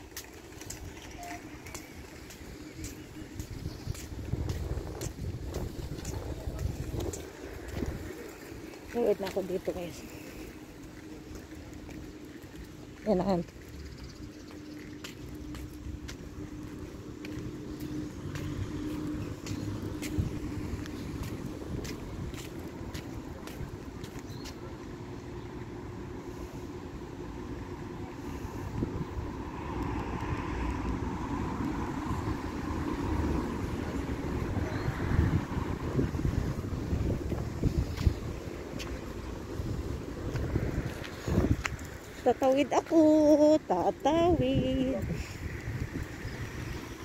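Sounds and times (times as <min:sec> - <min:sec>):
traffic rumble: 0:00.0 - 0:47.0
vehicle passing: 0:14.6 - 0:23.8, 0:27.2 - 0:47.0.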